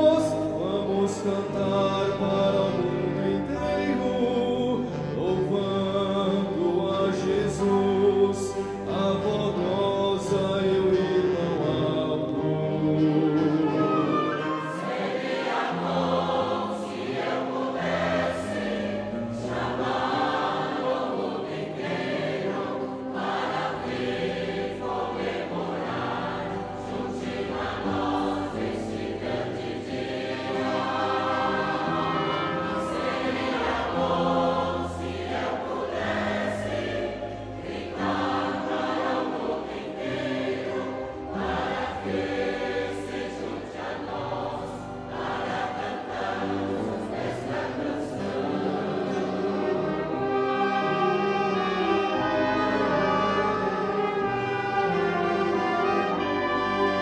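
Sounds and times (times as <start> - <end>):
group singing a hymn: 0.0 - 57.0.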